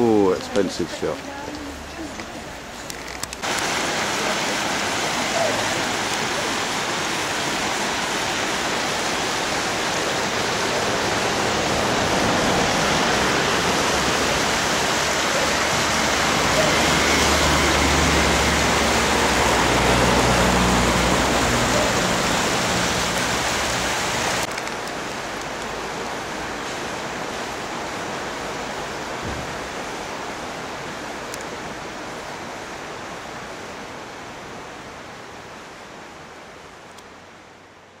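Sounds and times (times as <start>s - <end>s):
river water flowing: 0.0s - 38.0s.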